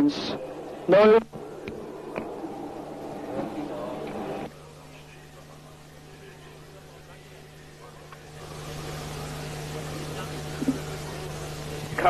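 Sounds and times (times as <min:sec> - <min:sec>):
low hum: 0:00.0 - 0:05.2.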